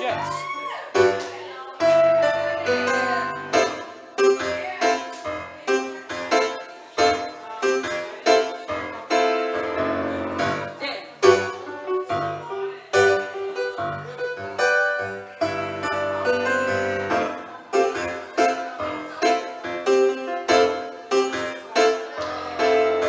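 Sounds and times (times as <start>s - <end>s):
keyboard playing piano chords: 0.0s - 23.0s.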